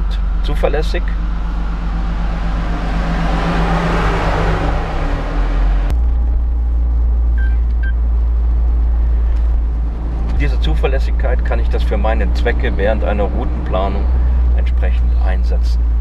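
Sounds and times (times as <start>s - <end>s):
car engine hum: 0.0s - 16.0s
wind and road noise: 0.0s - 16.0s.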